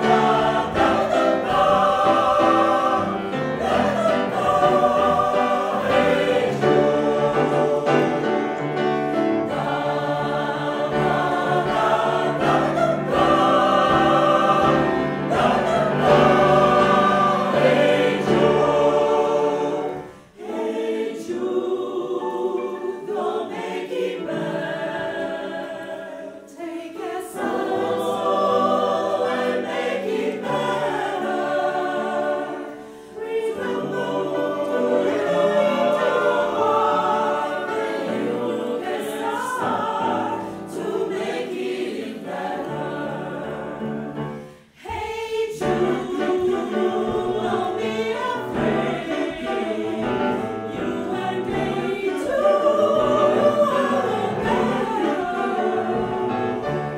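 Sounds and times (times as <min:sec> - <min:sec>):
grand piano accompaniment: 0:00.0 - 0:56.9
mixed choir singing: 0:00.0 - 0:56.9.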